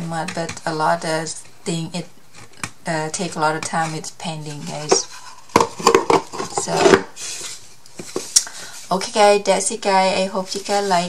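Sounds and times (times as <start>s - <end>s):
wooden drawers clicking and knocking: 4.6s - 7.0s.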